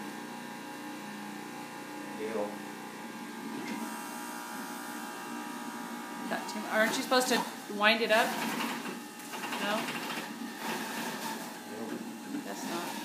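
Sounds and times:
juicer motor humming: 0.0 - 13.0.

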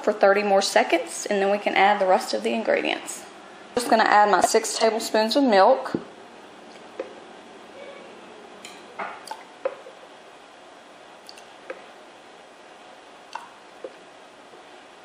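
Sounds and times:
low steady hiss: 0.0 - 15.0.

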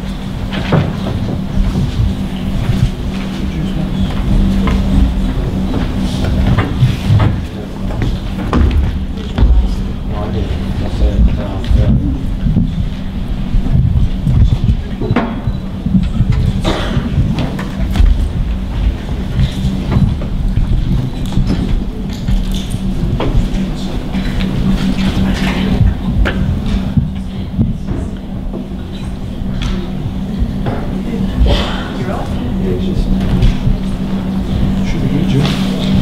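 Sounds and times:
low electrical hum: 0.0 - 36.0
voices murmuring: 0.0 - 36.0
knocks and thumps: 0.4 - 3.3, 4.0 - 23.6.

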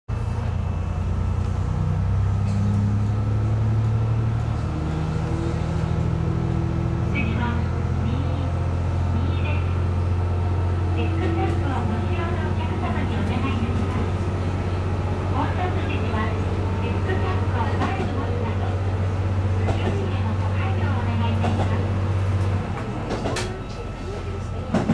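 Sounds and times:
diesel railcar engine drone: 0.1 - 24.9.

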